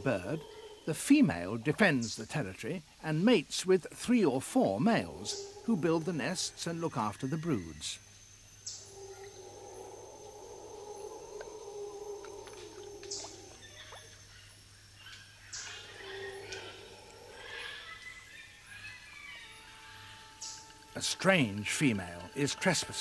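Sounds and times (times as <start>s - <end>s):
faint wavering low tones: 4.6s - 6.9s.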